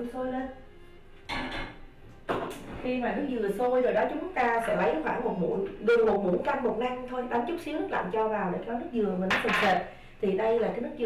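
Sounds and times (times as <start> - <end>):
cookware knocking: 1.3 - 2.5, 9.3 - 9.8
cookware scraping: 4.5 - 5.0.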